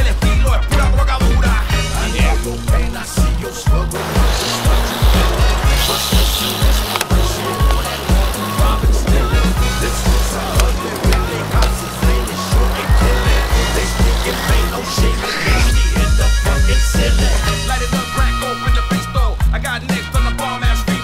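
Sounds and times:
bike tyres rolling on concrete: 0:00.0 - 0:18.2
hip-hop backing track: 0:00.0 - 0:21.0.

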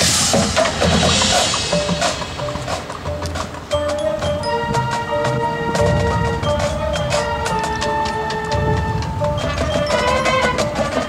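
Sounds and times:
clicking percussion strikes: 0:00.0 - 0:11.0
marching band playing: 0:00.0 - 0:11.0
sustained wind chords: 0:00.0 - 0:11.0.

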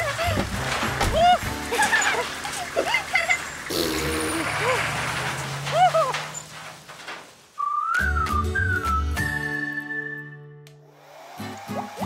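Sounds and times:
whistled tune: 0:07.6 - 0:10.6.

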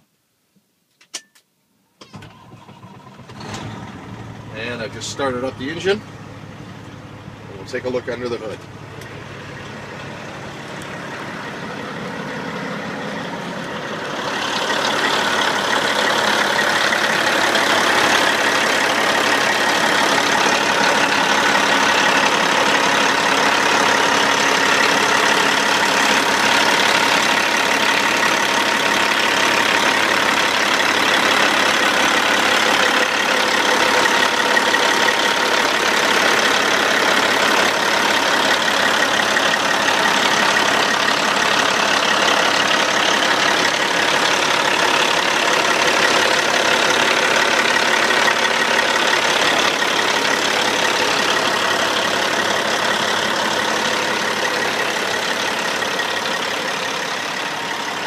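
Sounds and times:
diesel truck engine idling: 0:02.1 - 0:58.0.

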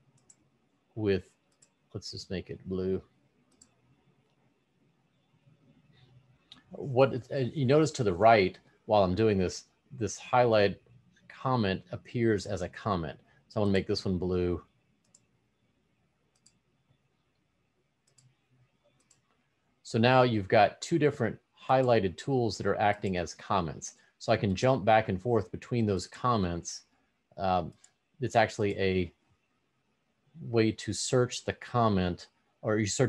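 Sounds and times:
computer mouse click: 0:00.1 - 0:00.5, 0:01.4 - 0:01.8, 0:03.5 - 0:04.5, 0:15.0 - 0:15.4, 0:16.3 - 0:19.4.

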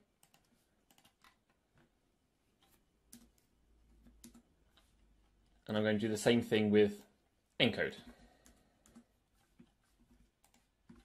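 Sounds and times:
keyboard and mouse clicks: 0:00.2 - 0:01.9, 0:02.6 - 0:05.6, 0:08.4 - 0:11.0.

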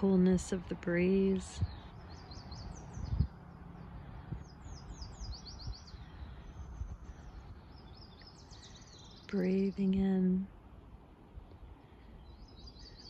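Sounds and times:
songbird singing: 0:00.0 - 0:13.0
steady low rumble: 0:00.0 - 0:13.0.

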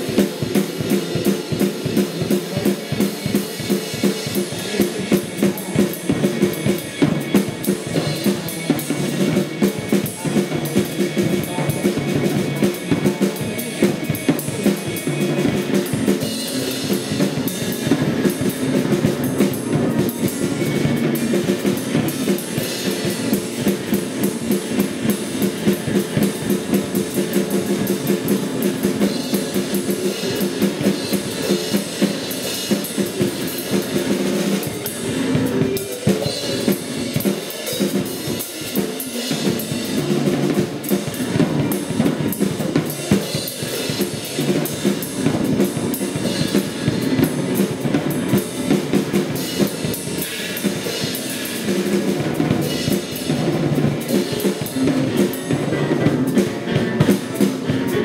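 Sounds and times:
fast drum kit playing: 0:00.0 - 0:58.0
steady low instrument tones: 0:00.0 - 0:58.0.

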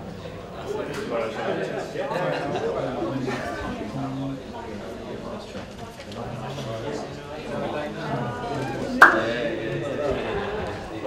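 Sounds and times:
sharp knock or slap: 0:09.0 - 0:09.4.

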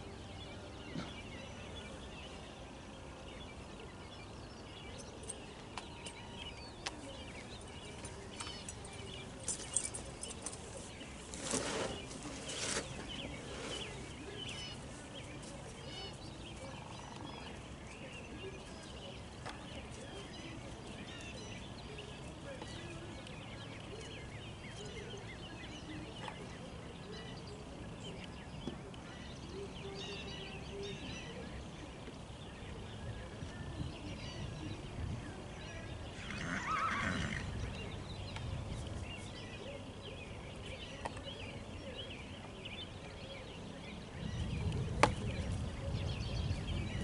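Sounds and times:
horse whinnying: 0:36.2 - 0:37.5.

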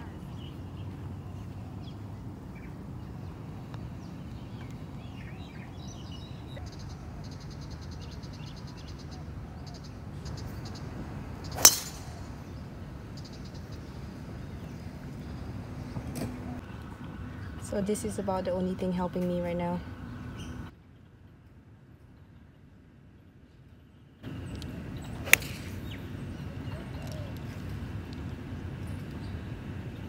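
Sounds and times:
golf club striking ball: 0:11.6 - 0:12.2, 0:25.0 - 0:26.0.

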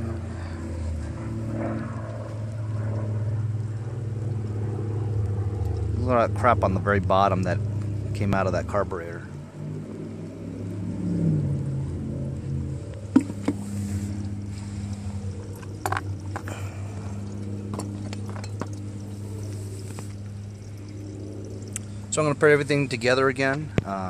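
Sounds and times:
low engine-like hum: 0:00.0 - 0:24.0.

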